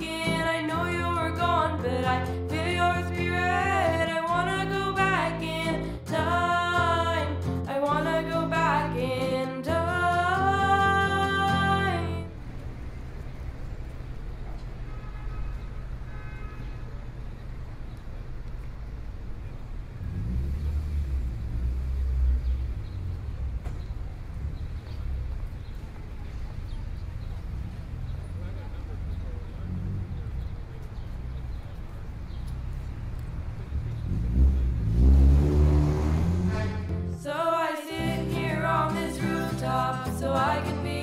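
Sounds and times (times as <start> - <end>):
low outdoor rumble: 0.0 - 37.3
vehicle engine accelerating: 11.6 - 37.2.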